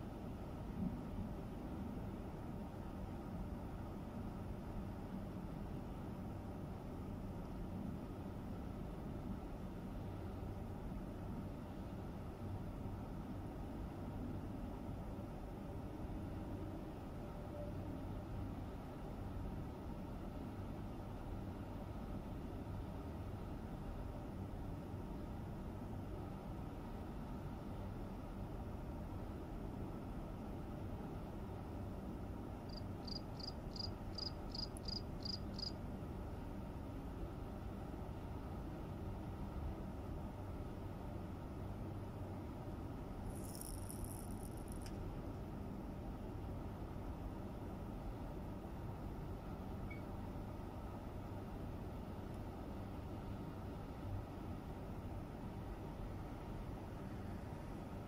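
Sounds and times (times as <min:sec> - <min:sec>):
low background rumble: 0:00.0 - 0:58.0
cricket chirping: 0:32.6 - 0:35.8, 0:43.2 - 0:44.9.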